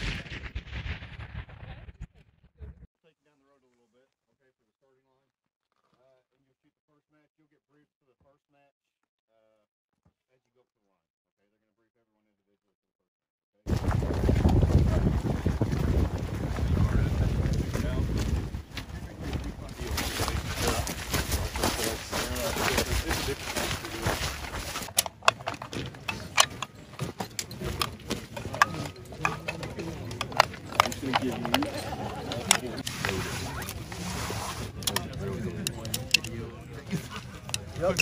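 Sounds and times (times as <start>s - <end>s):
wind on microphone: 13.7s - 22.0s.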